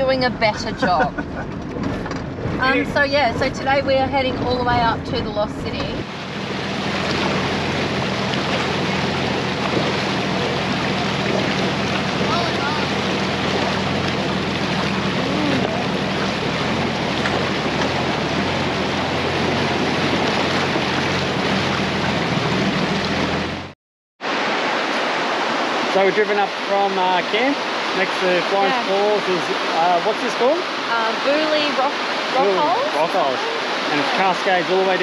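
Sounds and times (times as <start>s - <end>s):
engine low hum: 0.0s - 23.8s
water splashing from vehicle wheel: 5.7s - 23.7s, 24.3s - 35.0s
small waterfall rushing: 6.0s - 35.0s.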